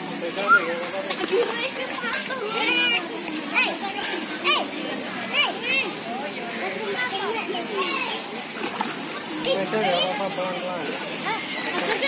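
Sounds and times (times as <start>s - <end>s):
children shouting at play: 0.4s - 0.9s, 7.0s - 8.4s, 11.2s - 12.0s.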